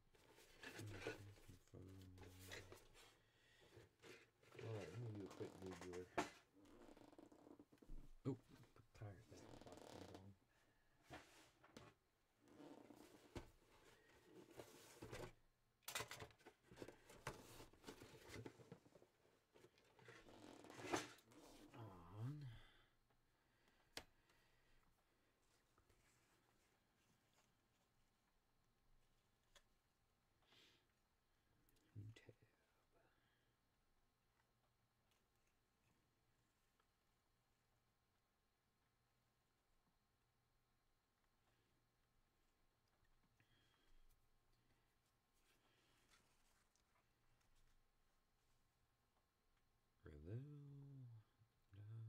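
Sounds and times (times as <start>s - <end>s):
faint muffled talking: 4.6s - 6.3s.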